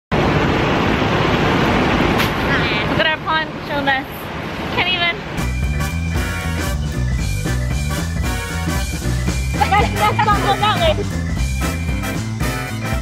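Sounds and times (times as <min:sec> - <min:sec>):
upbeat background music: 0:05.4 - 0:13.0.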